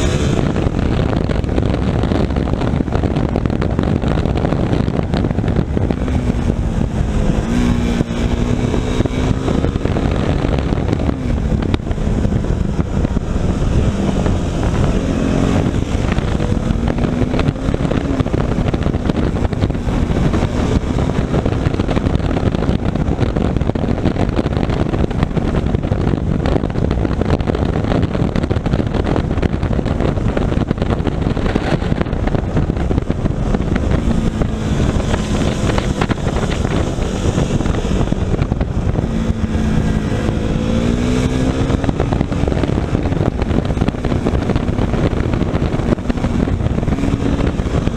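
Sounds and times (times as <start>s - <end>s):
motorcycle engine accelerating: 0.0s - 47.9s
wind rush over microphone: 0.0s - 47.9s.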